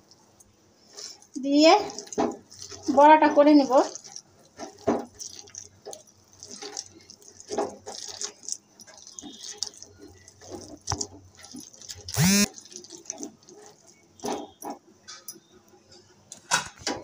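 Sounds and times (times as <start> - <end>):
hand kneading paste in bowl: 0.0 - 14.8.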